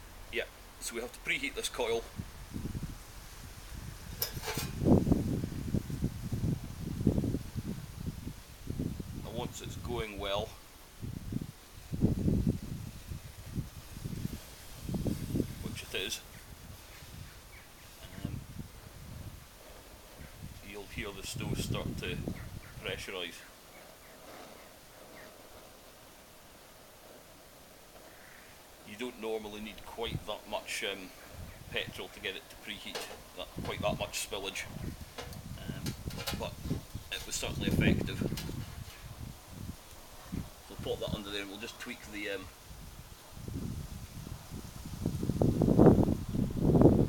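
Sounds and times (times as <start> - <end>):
flame fluttering low rumble: 2.0 - 9.3, 10.8 - 40.8, 42.4 - 47.0.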